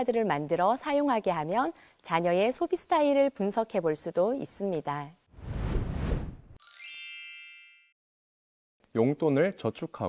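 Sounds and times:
noisy whoosh: 5.3s - 6.6s
bright chime ringing: 6.6s - 8.0s.

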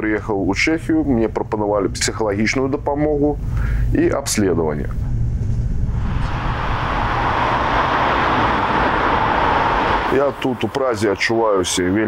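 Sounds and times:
passenger train rumbling: 5.8s - 11.4s.

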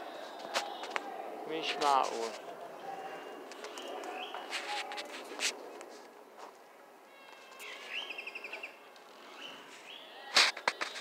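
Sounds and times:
birds calling: 0.0s - 4.8s, 7.1s - 11.0s
footsteps crunching on dry ground: 1.6s - 2.5s.

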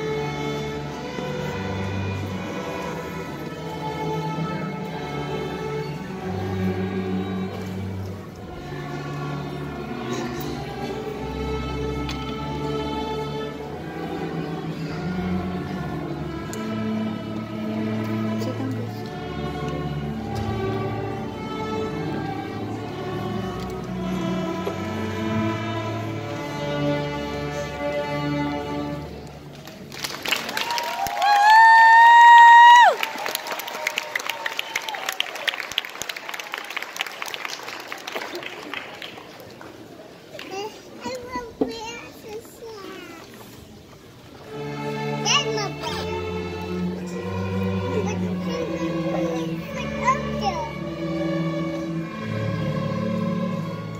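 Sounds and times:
string orchestra sustained notes: 0.0s - 53.9s
children talking and calling out: 40.2s - 43.9s, 44.6s - 51.9s.

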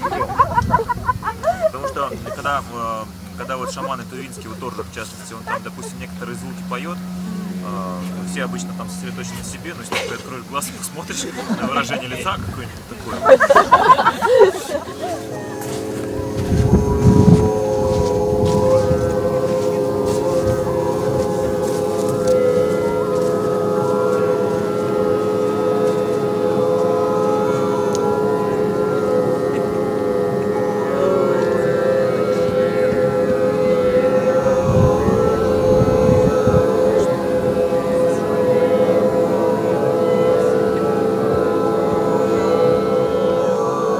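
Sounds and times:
group overtone singing drone: 0.0s - 43.9s.

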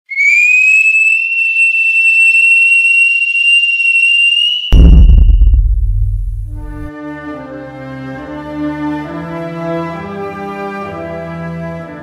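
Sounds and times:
loud high whistle: 0.1s - 5.4s
deep rumbling boom: 4.7s - 6.9s.

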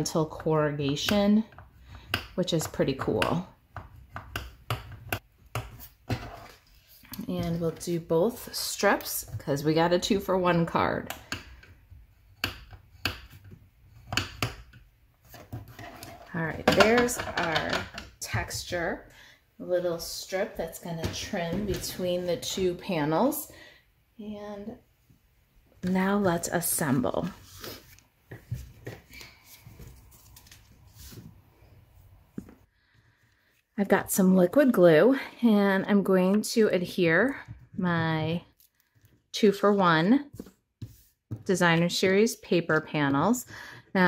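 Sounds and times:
light paper rustling: 27.4s - 31.4s.

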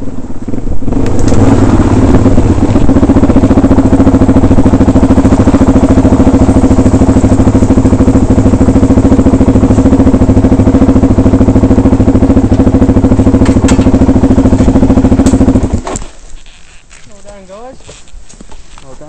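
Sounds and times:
dirt bike engine running: 0.0s - 19.0s.

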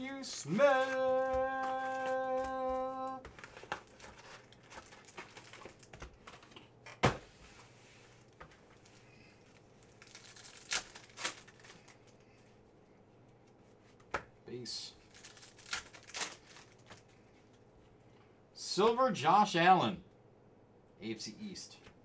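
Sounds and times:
foil wrappers crinkling: 0.0s - 6.6s, 8.6s - 12.3s, 15.0s - 17.3s
foil wrapper tearing: 0.5s - 3.2s, 9.8s - 12.0s, 15.1s - 17.0s.

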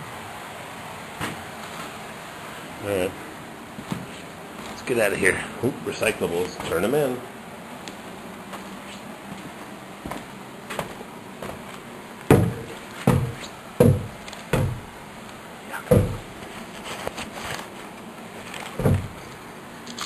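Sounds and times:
footsteps on wooden stairs: 8.5s - 15.0s, 15.9s - 17.1s, 18.7s - 19.2s.

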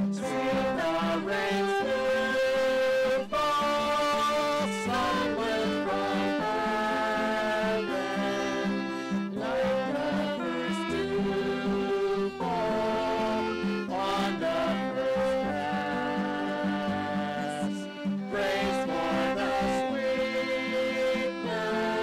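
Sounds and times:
acoustic guitar chords: 0.0s - 22.0s
violins playing: 0.0s - 22.0s.

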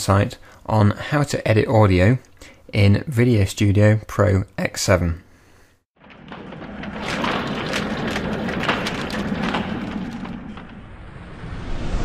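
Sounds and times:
dense rush of rapid clicks: 6.0s - 10.8s.

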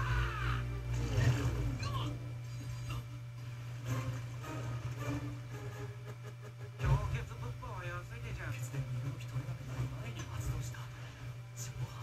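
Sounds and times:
faint soundtrack: 0.0s - 12.0s
steady low hum: 0.0s - 12.0s.

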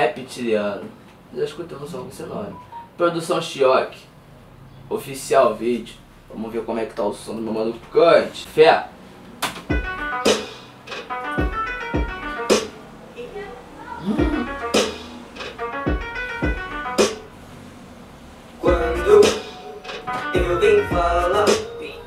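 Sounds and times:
sharp percussive hits: 9.6s - 12.8s, 14.2s - 17.3s
deep kick drums: 9.7s - 10.0s, 11.4s - 12.2s, 14.2s - 14.6s, 15.9s - 16.8s, 18.7s - 19.1s, 20.4s - 21.3s
pitched synth sounds: 9.7s - 13.0s, 14.0s - 17.5s, 18.6s - 22.0s.

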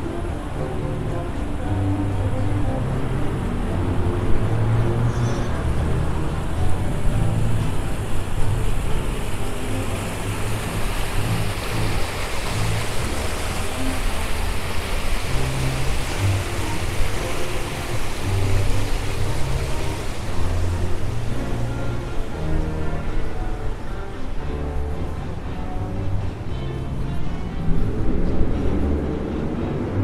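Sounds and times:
water rushing down a fountain: 0.0s - 25.2s.

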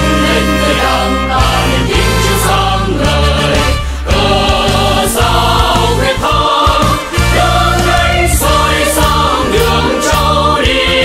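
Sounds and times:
choir singing a march: 0.0s - 11.0s
instrumental accompaniment: 0.0s - 11.0s.

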